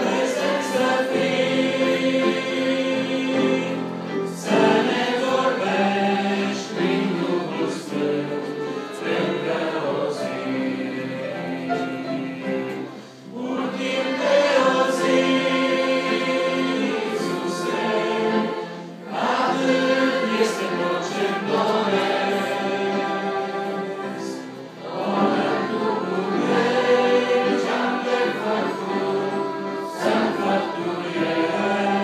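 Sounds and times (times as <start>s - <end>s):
congregation singing a hymn: 0.0s - 32.0s.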